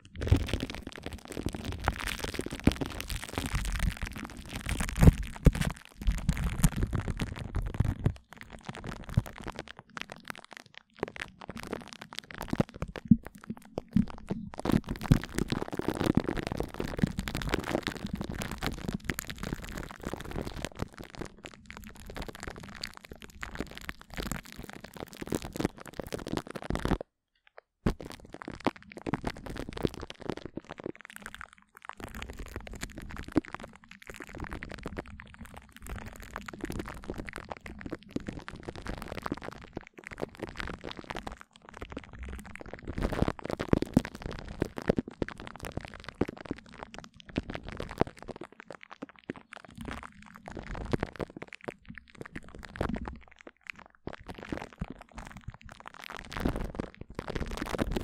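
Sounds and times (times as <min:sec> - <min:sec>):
glue stick crackling on microphone: 0:00.0 - 0:58.0.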